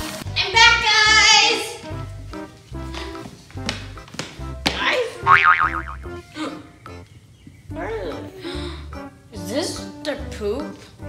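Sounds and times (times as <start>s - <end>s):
wobbling boing-like tone: 5.3s - 6.1s
upbeat music with bouncing bass: 5.3s - 6.2s.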